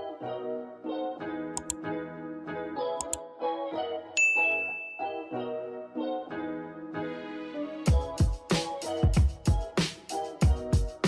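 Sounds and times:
light piano-like music: 0.0s - 11.0s
mouse clicks: 1.6s - 1.8s, 3.0s - 3.2s
notification bell ding: 4.2s - 5.4s.

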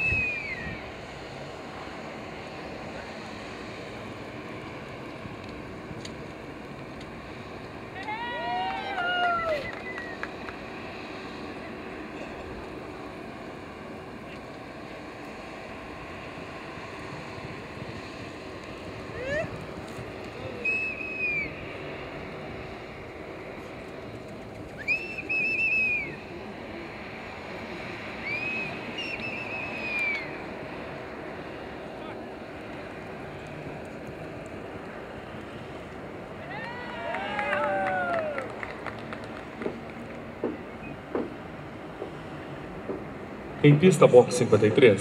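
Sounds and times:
wavering high whistles: 0.0s - 1.0s, 8.0s - 10.3s, 20.4s - 22.0s, 24.6s - 26.4s, 28.1s - 30.6s, 40.6s - 41.0s
distant crowd murmur: 0.0s - 45.0s
wind: 0.0s - 45.0s.

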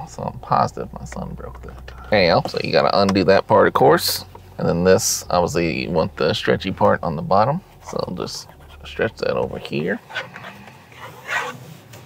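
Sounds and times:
fabric rustling and rubbing: 11.0s - 12.0s.

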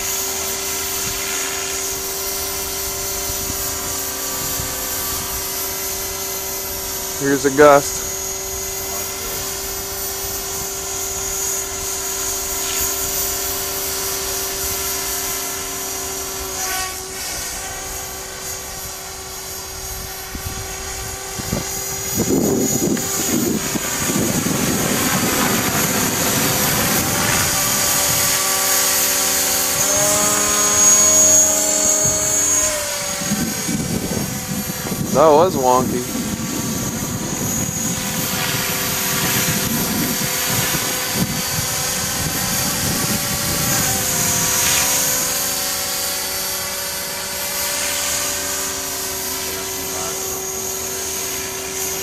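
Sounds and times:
helicopter motor and rotor whine: 0.0s - 52.0s
wind buffeting microphone: 19.8s - 45.4s.

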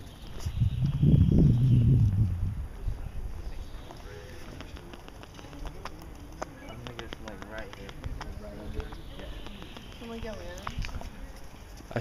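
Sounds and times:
low rumble: 0.6s - 3.4s
faint voices: 2.4s - 12.0s
sharp clicks and taps: 4.4s - 11.0s.

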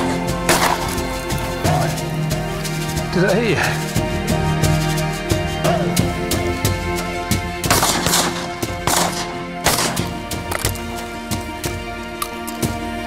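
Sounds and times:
background music: 0.0s - 13.0s
shotgun blasts: 0.5s - 1.0s, 7.7s - 10.2s.

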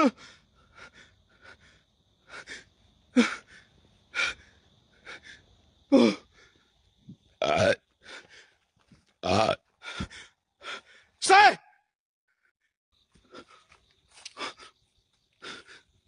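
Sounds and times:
man gasping breaths: 9.8s - 11.2s.

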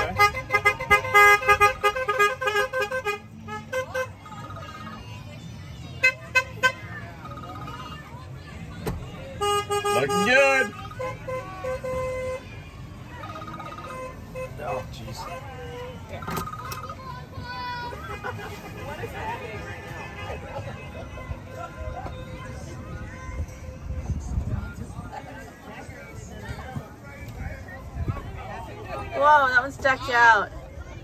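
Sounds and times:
golf cart horns honking: 0.0s - 5.0s, 5.8s - 8.1s, 9.0s - 22.8s.

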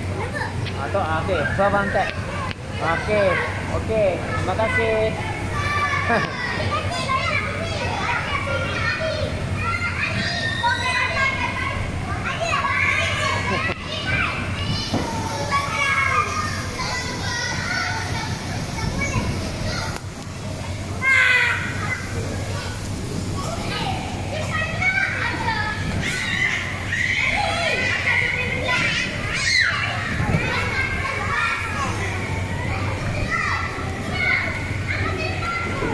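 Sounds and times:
steady low hum: 0.0s - 35.9s
young children playing and calling: 0.0s - 35.9s.

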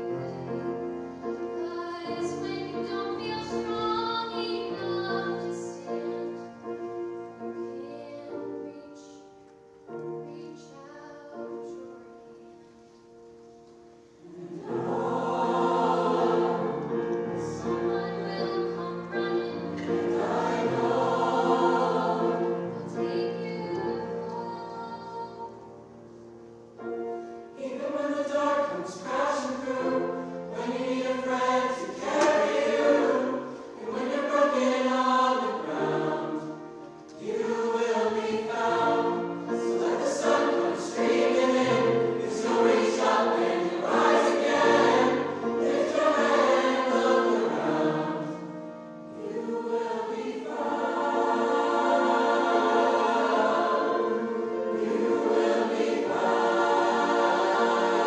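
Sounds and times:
choir singing in parts: 0.0s - 9.3s, 14.0s - 58.0s.

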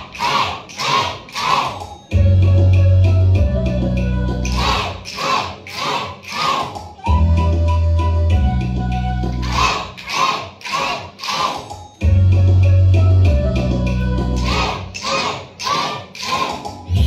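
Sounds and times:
children shouting in unison: 0.0s - 1.9s, 4.5s - 6.8s, 9.4s - 11.7s, 14.4s - 16.7s
recorded music with bass line: 2.1s - 4.9s, 7.1s - 9.7s, 12.0s - 14.8s.

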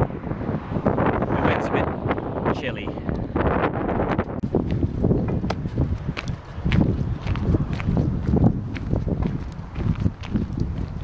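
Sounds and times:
wind buffeting microphone: 0.0s - 11.0s
footsteps on paved road: 4.2s - 11.0s.

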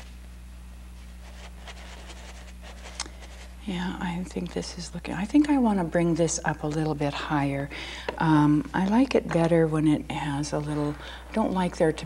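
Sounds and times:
low hum: 0.0s - 12.0s
paintbrush strokes on canvas: 1.0s - 3.7s.

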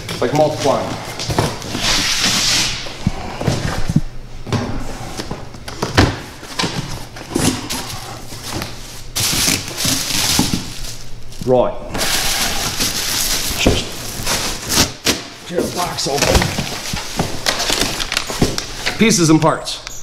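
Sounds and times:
plastic packaging rustling: 5.7s - 19.3s.

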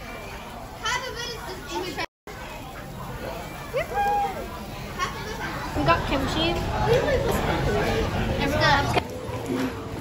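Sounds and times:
faint background chatter: 0.0s - 10.0s.

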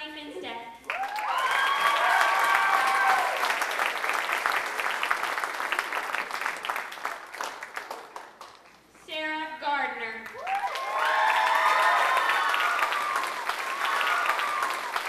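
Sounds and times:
audience applause: 0.9s - 8.8s, 10.4s - 15.0s.

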